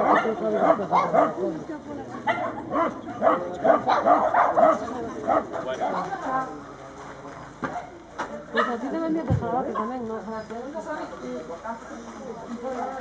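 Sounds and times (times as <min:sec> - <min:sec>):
dog barking rapidly: 0:02.3 - 0:05.4.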